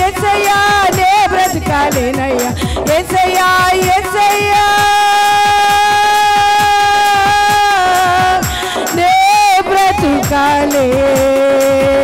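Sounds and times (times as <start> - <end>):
quick steady drum beat: 0.0 - 12.0.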